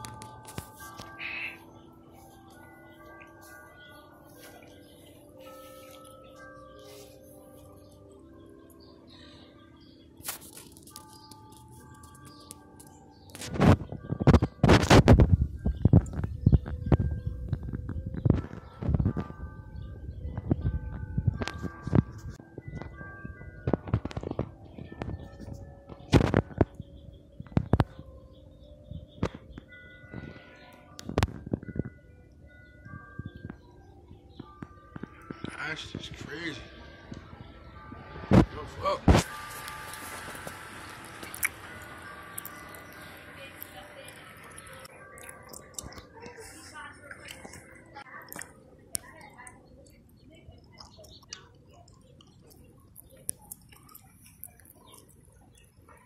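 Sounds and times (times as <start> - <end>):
ringing chime tones: 0.0 - 48.8.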